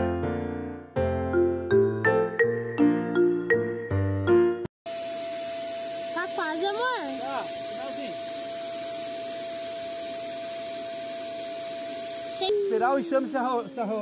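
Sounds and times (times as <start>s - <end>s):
vacuum motor whining hum: 4.9s - 14.0s.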